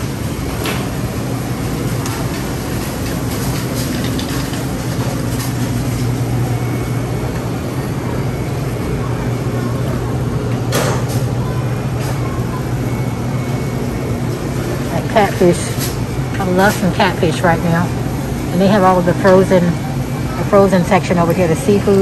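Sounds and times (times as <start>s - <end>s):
shopping cart rolling: 0.0s - 19.8s.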